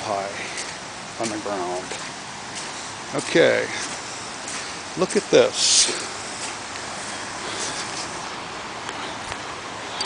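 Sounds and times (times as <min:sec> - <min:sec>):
flooded creek rushing: 0:00.0 - 0:10.0.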